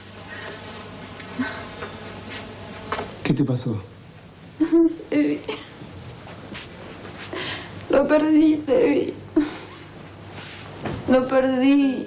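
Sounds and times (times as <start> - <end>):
woman crying and sobbing: 4.6 - 5.8, 8.8 - 9.9.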